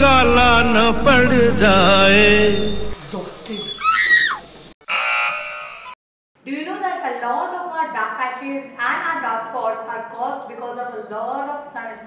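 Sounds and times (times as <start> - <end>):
song with singing and bass: 0.0 - 3.0
wrong answer buzzer: 4.8 - 6.0.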